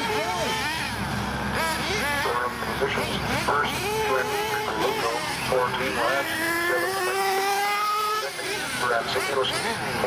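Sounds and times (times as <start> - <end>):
small engines whining: 0.0 - 10.0.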